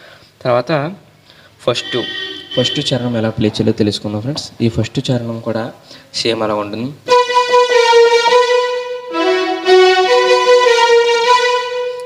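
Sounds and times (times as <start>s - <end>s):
electronic keyboard chords: 7.1s - 12.0s.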